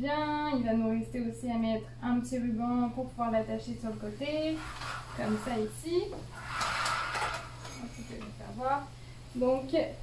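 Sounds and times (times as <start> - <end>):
curtain fabric rustling: 4.4 - 8.2.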